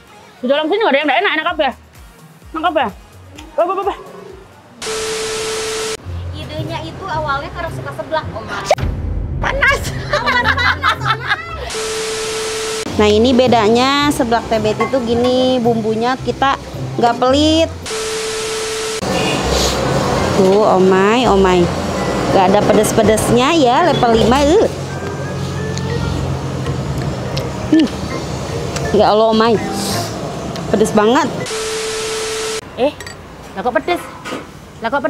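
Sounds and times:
background music: 0.0s - 11.8s, 12.8s - 18.6s
static hiss: 4.8s - 6.0s, 11.7s - 12.9s
tv static hiss: 4.8s - 6.0s, 11.7s - 12.9s, 17.9s - 19.2s, 31.5s - 32.6s
steady tone: 11.6s - 13.3s, 17.8s - 19.4s, 31.2s - 32.6s
steady mid-pitched beep: 11.7s - 12.9s, 17.9s - 19.0s, 31.4s - 32.6s.

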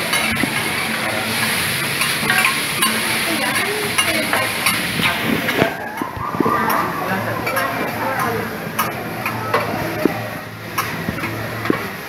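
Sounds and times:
vegetables sizzling on a griddle: 0.0s - 12.0s.

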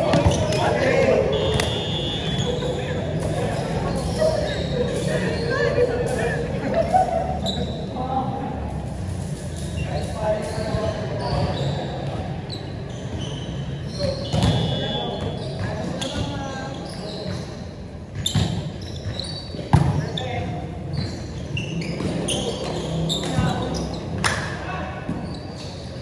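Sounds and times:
players shouting and chatter: 0.0s - 26.0s.

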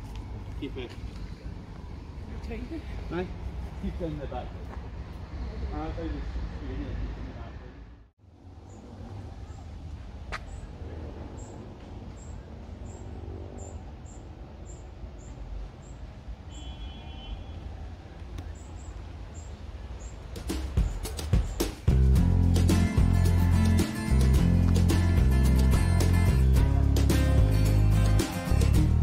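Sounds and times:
small birds chirping: 18.2s - 21.8s
strummed guitar music: 21.9s - 29.0s.

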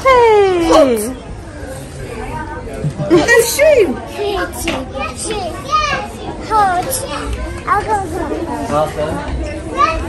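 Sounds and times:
children playing: 0.0s - 10.0s.

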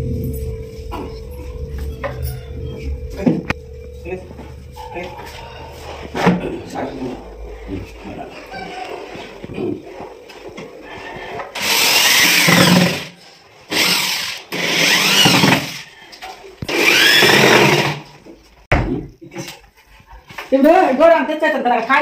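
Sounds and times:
electric drill whining: 11.6s - 15.8s, 16.6s - 18.0s.

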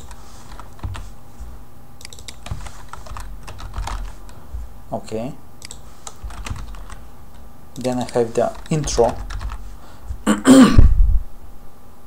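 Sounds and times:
man clearing throat: 10.2s - 11.0s.

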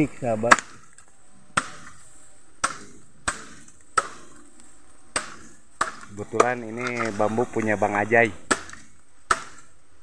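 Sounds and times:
machete chopping bamboo: 0.4s - 1.0s, 1.6s - 2.0s, 2.6s - 4.4s, 5.1s - 7.8s, 8.4s - 9.8s.

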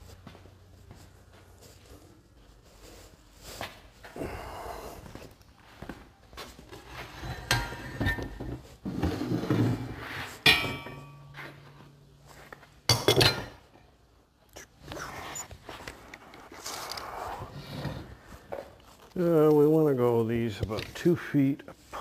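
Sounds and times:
metal parts clanking on workbench: 12.9s - 13.6s.

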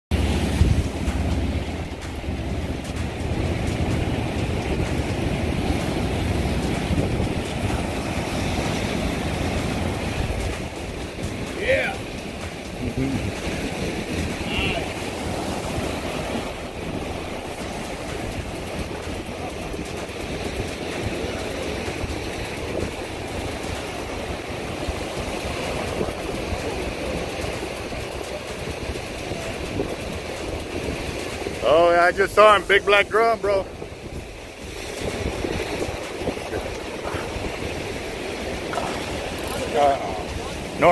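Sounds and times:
surf breaking against rocks: 0.1s - 40.9s
wind buffeting microphone: 0.1s - 40.9s.

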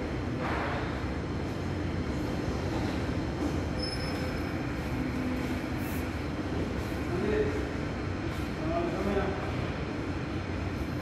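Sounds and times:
low rumble and hum: 0.0s - 11.0s.

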